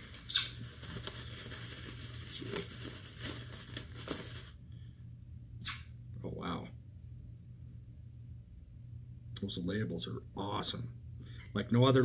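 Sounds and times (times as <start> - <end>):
packaging rustling and crinkling: 0.0 - 4.6.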